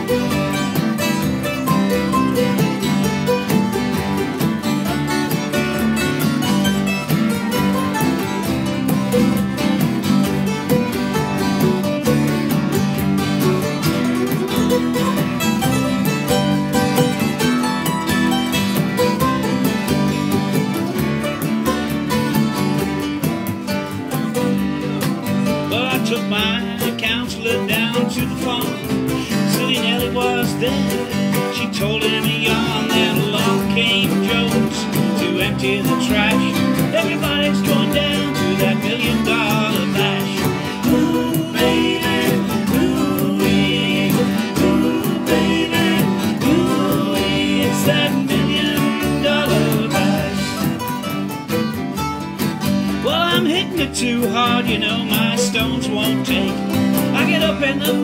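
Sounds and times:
fiddle melody: 0.0s - 58.0s
hand drum: 0.0s - 58.0s
strummed and plucked strings: 0.0s - 58.0s.

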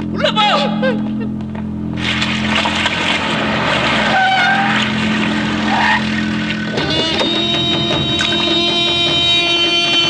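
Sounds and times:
suv engine and tyre noise: 1.1s - 8.7s.

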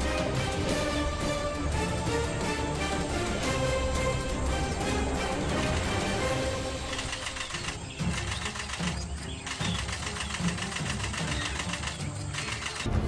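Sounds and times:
music with rhythmic beat: 0.0s - 13.0s.

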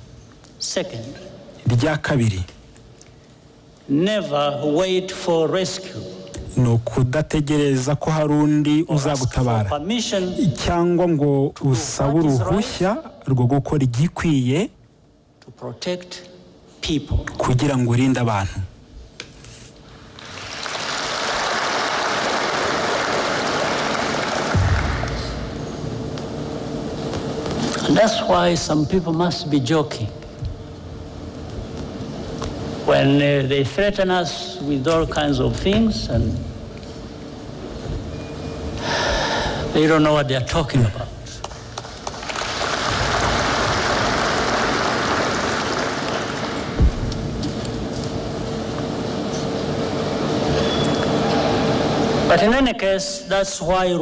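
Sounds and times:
audience applauding: 20.2s - 25.6s, 41.7s - 46.8s
low thump: 46.8s - 47.2s.

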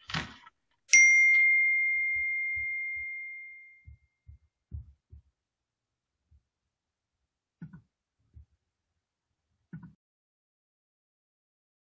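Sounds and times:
bright ding: 0.9s - 4.0s.

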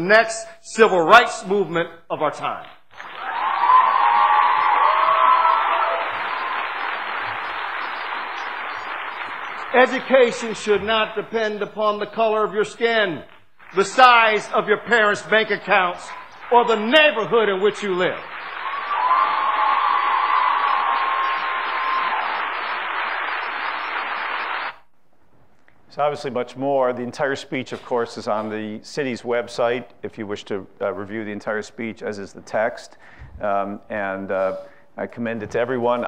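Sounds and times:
audience applause: 2.9s - 10.6s, 13.6s - 24.8s.

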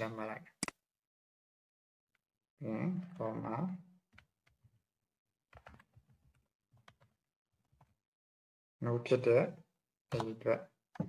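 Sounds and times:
faint keyboard typing: 5.5s - 8.0s.

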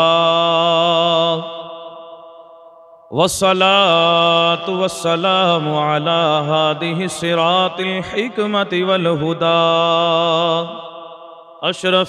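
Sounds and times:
man chanting recitation: 0.0s - 1.9s, 3.2s - 12.0s.

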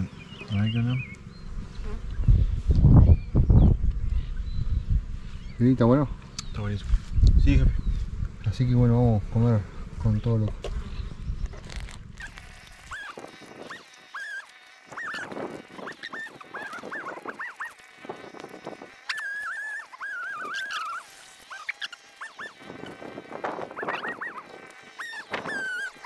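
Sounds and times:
high wavering animal calls: 12.2s - 26.0s.

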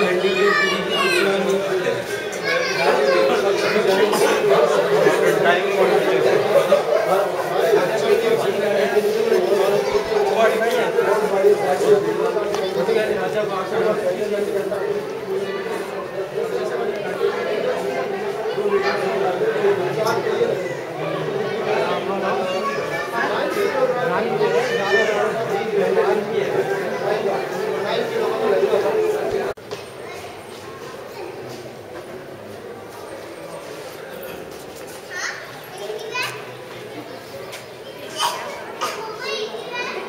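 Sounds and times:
children shouting: 0.0s - 13.3s, 17.9s - 31.6s, 37.8s - 40.0s
crowd chatter: 0.0s - 40.0s
murmur of visitors: 0.0s - 40.0s.

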